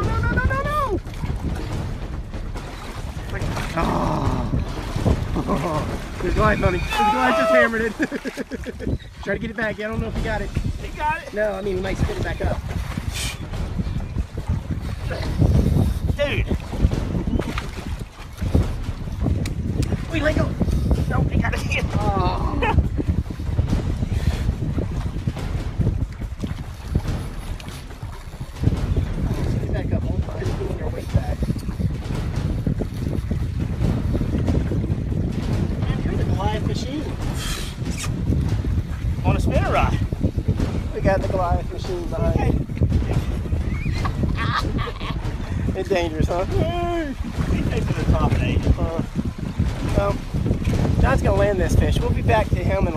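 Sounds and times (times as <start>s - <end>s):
wind buffeting microphone: 0.0s - 52.9s
vocal exclamation: 6.7s - 7.9s.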